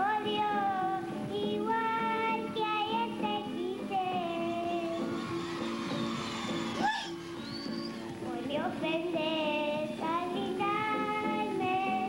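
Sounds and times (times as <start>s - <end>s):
girl singing: 0.0s - 5.1s, 8.2s - 12.0s
musical accompaniment: 0.0s - 12.0s.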